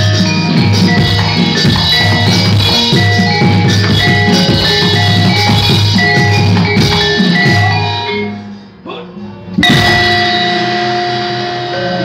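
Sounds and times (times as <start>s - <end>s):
metallophone struck with mallet: 0.0s - 8.4s, 9.6s - 12.0s.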